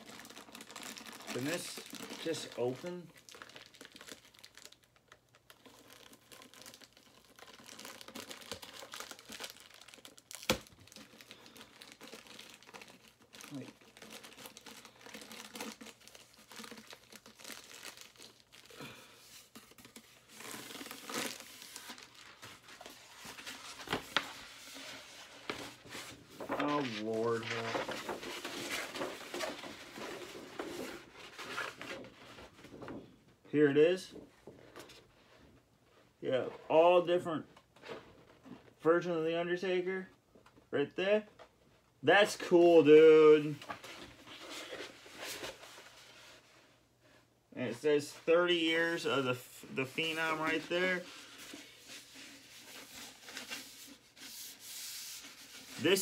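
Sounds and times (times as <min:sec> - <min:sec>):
plastic packaging crinkling and tearing: 0:00.0 - 0:32.2, 0:48.5 - 0:56.0.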